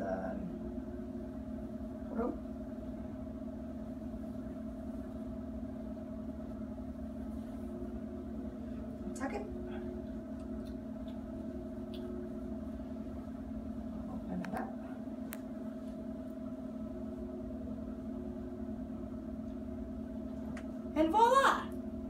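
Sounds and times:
mechanical room hum: 0.0 - 22.0.

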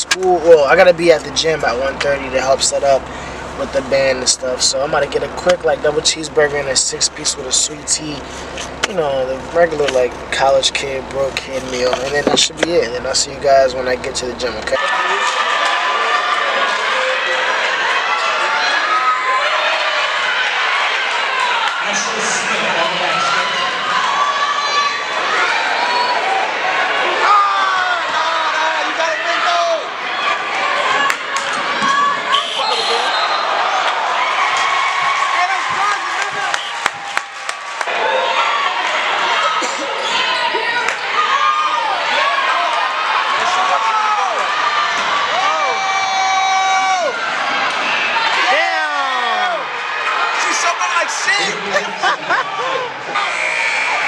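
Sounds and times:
crowd talking and shouting: 0.0 - 54.0.

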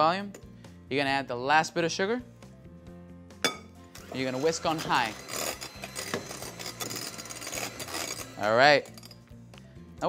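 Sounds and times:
electric hand mixer whipping: 3.9 - 9.2.

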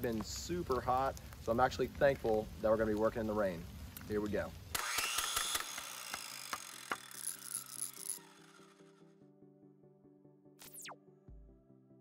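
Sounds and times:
held synthesizer chord: 8.8 - 12.0.

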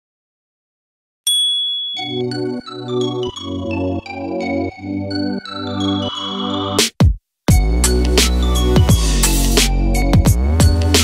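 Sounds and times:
high bell ding: 1.3 - 2.6.

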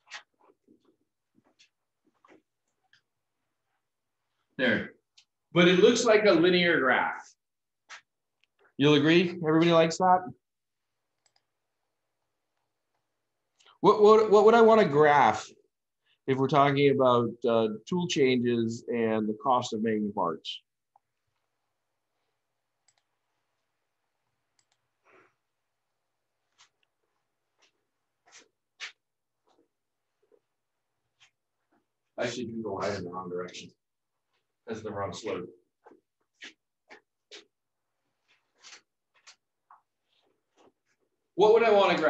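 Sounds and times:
man speaking: 4.6 - 7.4, 8.7 - 10.4, 13.7 - 20.7, 32.2 - 33.8, 34.6 - 35.7, 41.4 - 42.0.

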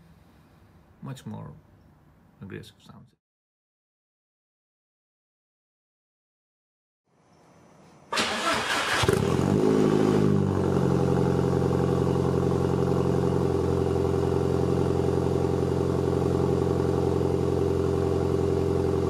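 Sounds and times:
car engine starting and idling: 8.1 - 19.0.

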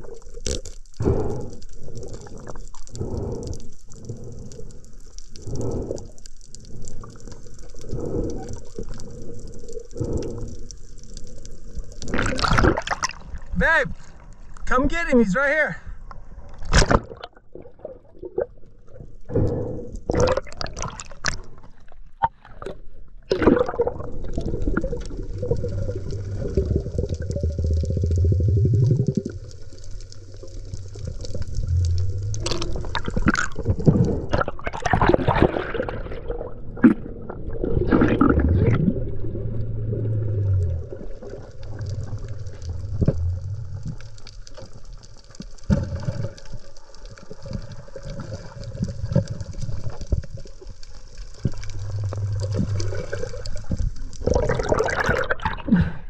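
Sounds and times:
muffled underwater water movement: 0.0 - 56.0
low hums: 23.8 - 34.4, 37.2 - 45.3, 50.8 - 55.1.

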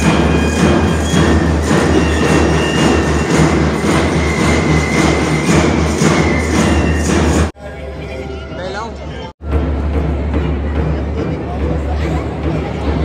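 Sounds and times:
march music with drumbeat: 0.0 - 7.6, 9.4 - 13.0.

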